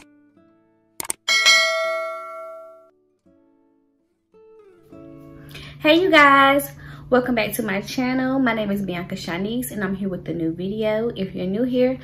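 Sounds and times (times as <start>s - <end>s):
notification bell ding: 1.3s - 2.8s.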